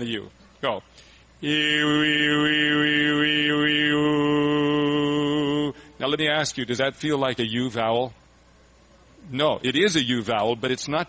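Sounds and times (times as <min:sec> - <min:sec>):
man singing vowel exercise: 0:01.4 - 0:06.9.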